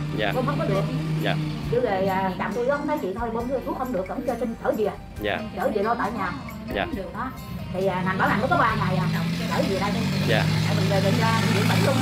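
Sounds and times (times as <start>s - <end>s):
person speaking: 0.2s - 0.5s, 5.2s - 5.5s, 6.7s - 7.0s.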